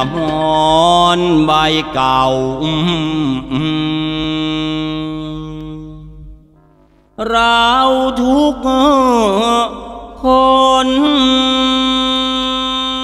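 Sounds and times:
man chanting: 0:00.0 - 0:06.6, 0:07.2 - 0:13.0.

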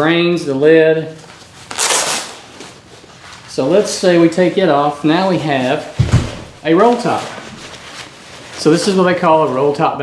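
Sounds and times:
backpack fabric and straps rustling: 0:05.8 - 0:09.1.

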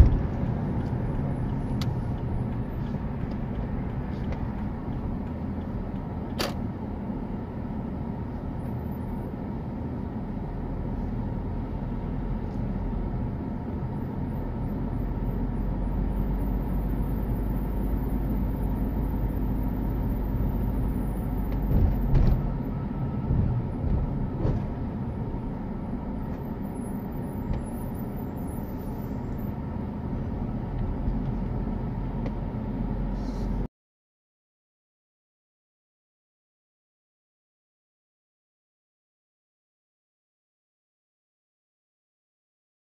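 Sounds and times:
car engine and tyre rumble: 0:00.0 - 0:33.7.

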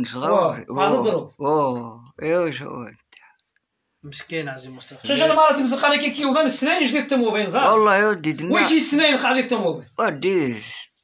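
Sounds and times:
man speaking: 0:00.0 - 0:03.0, 0:04.0 - 0:11.0.

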